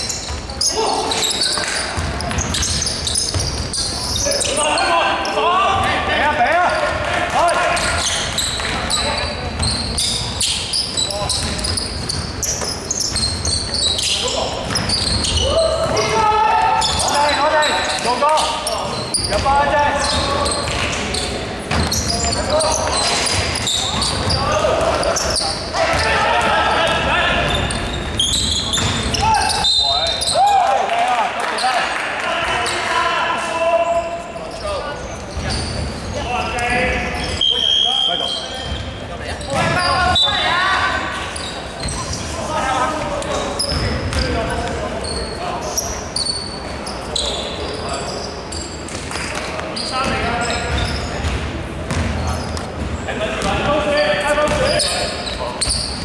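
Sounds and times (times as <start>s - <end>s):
shoe squeaks: 0.0s - 5.7s, 6.6s - 30.6s, 33.8s - 56.0s
players calling out: 0.0s - 51.2s
basketball bouncing on hardwood: 50.0s - 52.2s.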